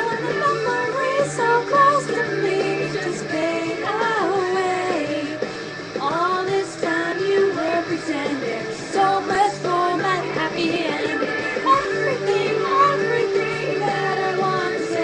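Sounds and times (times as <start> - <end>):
girl singing: 0.0 - 5.3, 6.0 - 15.0
pop-rock backing track: 0.0 - 15.0.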